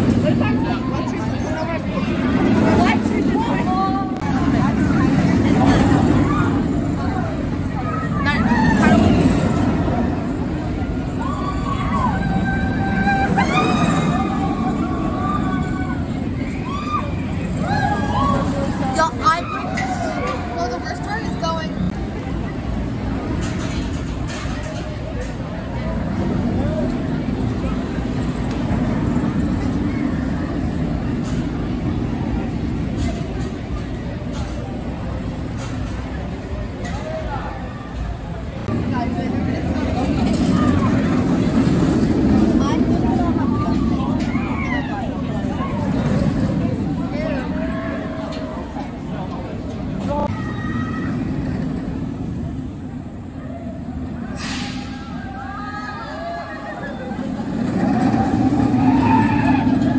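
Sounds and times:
people's voices: 0.0s - 59.9s
roller coaster train rumble: 0.0s - 59.9s
riders screaming: 11.1s - 18.8s, 55.1s - 59.9s.

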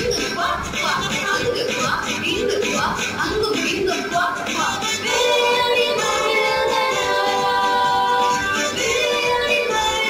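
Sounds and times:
children's action song with instruments: 0.0s - 10.0s.

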